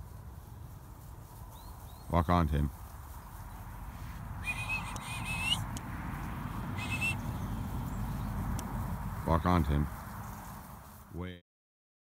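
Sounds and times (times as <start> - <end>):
low steady rumble: 3.4 - 11.1
short whistle: 4.4 - 5.6, 6.8 - 7.2
warbling high whistle: 4.4 - 5.6, 6.8 - 7.2.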